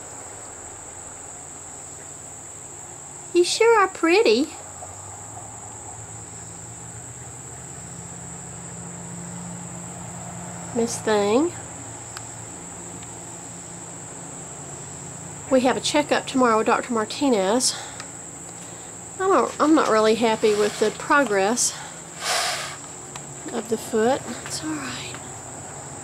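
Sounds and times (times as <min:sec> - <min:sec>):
insect chorus drone: 0:00.0 - 0:26.0.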